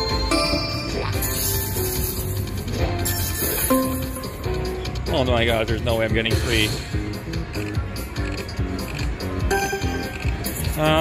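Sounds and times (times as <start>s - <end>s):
electronic slot machine music: 0.0s - 11.0s.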